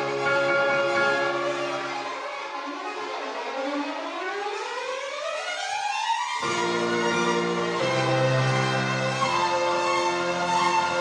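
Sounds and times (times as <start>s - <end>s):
violins playing upward glissando: 0.0s - 3.6s, 6.4s - 11.0s.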